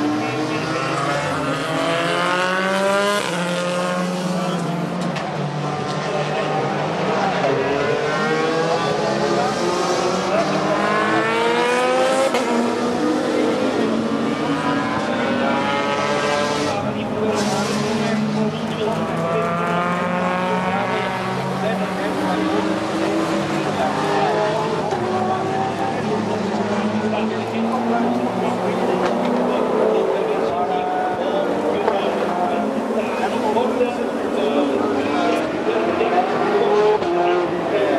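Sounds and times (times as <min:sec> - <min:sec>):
race cars passing at speed: 0:00.0 - 0:37.9.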